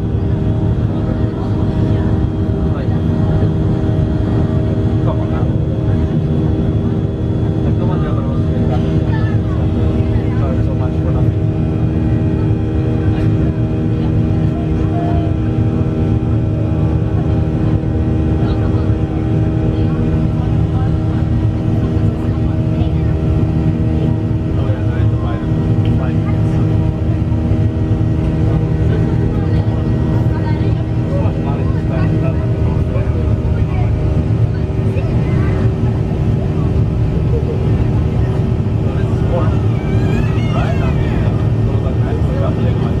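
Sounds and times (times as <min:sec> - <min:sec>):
faint passenger voices: 0:00.0 - 0:43.0
jet engines droning in cabin: 0:00.0 - 0:43.0.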